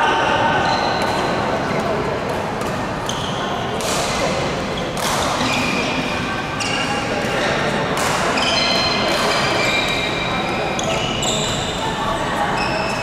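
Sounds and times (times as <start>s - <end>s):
sneakers squeaking on court floor: 3.0s - 3.7s, 4.7s - 7.5s, 8.3s - 13.0s.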